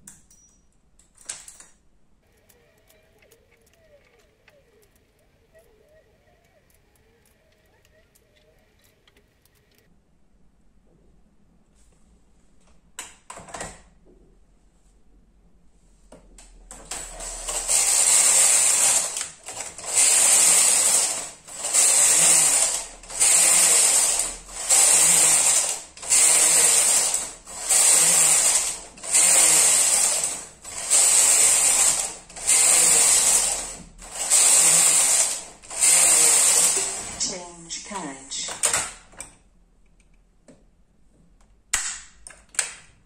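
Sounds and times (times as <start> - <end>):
knitting machine carriage clatter: 2.3 - 9.9, 16.8 - 37.4.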